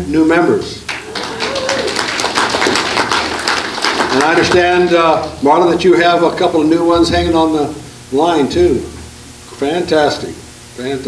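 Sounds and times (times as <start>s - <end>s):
audience applauding: 0.9s - 4.8s.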